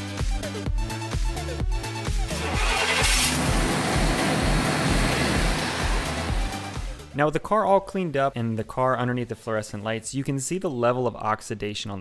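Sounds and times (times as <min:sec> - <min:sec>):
truck engine starting and running: 0:02.2 - 0:07.1.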